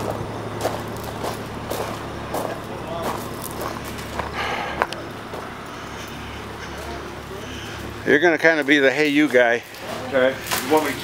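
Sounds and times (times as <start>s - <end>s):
indistinct voices: 0.0s - 11.0s
truck engine running: 0.0s - 11.0s.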